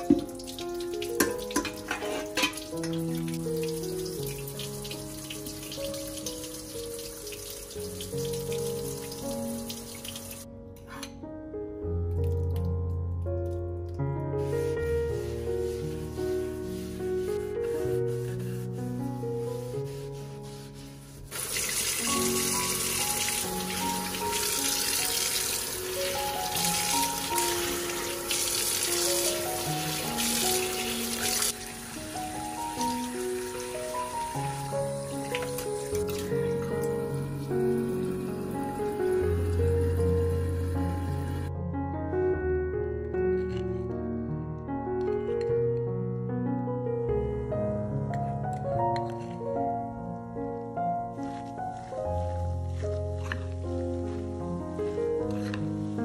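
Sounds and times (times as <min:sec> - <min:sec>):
tap water running into metal pot: 0:00.0 - 0:10.4, 0:21.3 - 0:32.0, 0:32.6 - 0:37.2.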